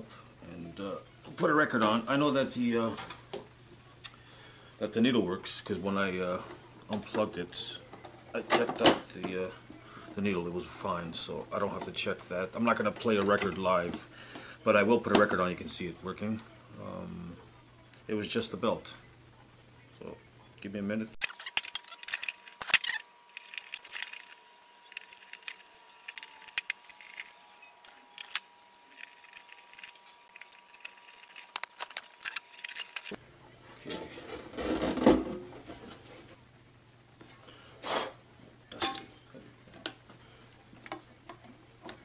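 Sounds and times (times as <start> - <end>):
screwdriver turning screws into plastic: 21.2 - 33.2.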